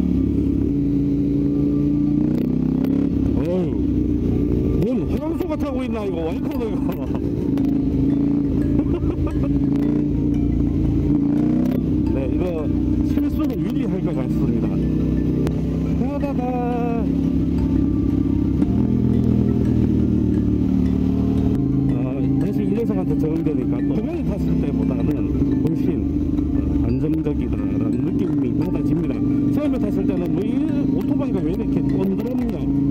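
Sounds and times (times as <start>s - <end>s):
motorcycle engine cruising: 0.0s - 32.9s.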